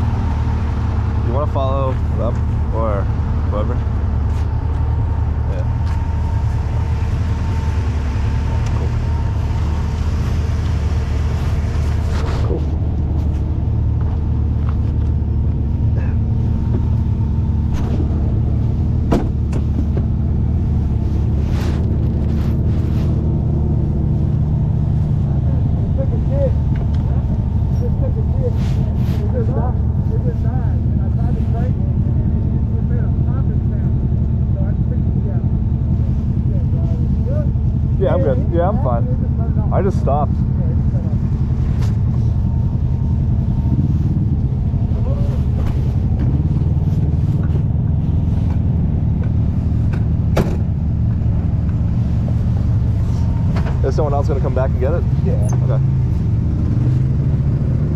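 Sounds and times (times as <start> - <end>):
engine idling: 0.0 - 57.9.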